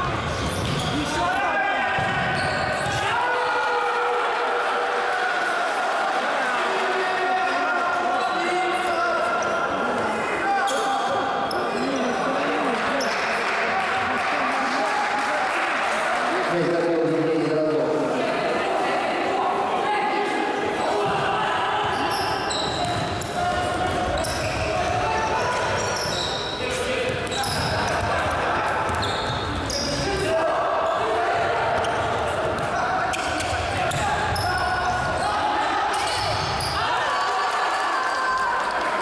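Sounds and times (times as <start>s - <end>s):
players shouting: 0.8s - 12.6s, 18.0s - 39.0s
shoe squeaks: 2.3s - 3.0s, 10.6s - 12.3s, 21.9s - 23.3s, 24.1s - 28.1s, 28.9s - 30.2s.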